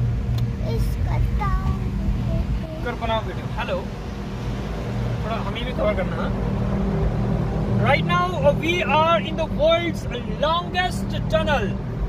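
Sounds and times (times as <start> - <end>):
car engine and tyres drone: 0.0 - 12.0.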